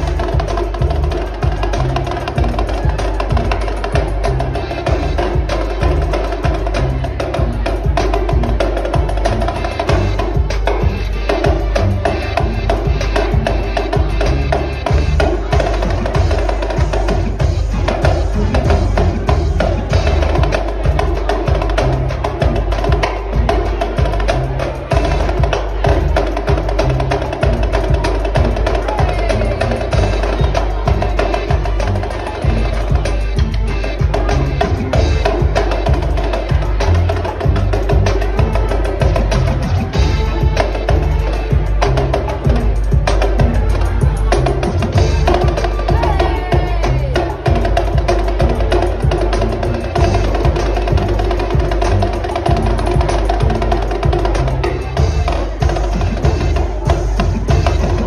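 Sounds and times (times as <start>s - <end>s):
backing music with deep bass: 0.0s - 58.0s.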